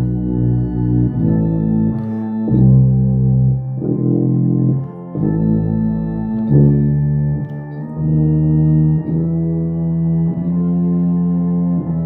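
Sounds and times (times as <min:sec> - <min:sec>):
organ chords: 0:00.0 - 0:12.0
tuba playing sustained notes: 0:00.0 - 0:12.0.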